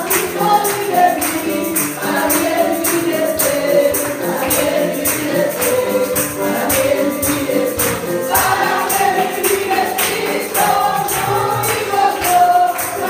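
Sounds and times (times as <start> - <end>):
congregation singing: 0.0 - 13.0
steady percussion beat: 0.0 - 13.0.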